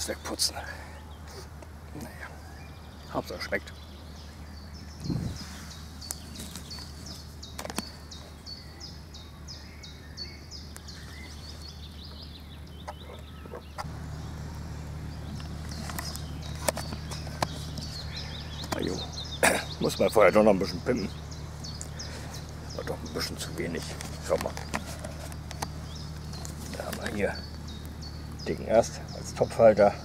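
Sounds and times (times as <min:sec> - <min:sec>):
bird singing: 0:00.0 - 0:30.0
low outdoor rumble: 0:00.0 - 0:30.0
sharp clicks: 0:21.6 - 0:28.5.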